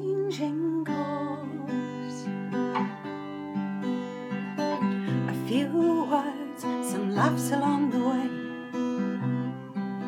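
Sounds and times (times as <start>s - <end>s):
acoustic guitar strumming: 1.0s - 10.0s.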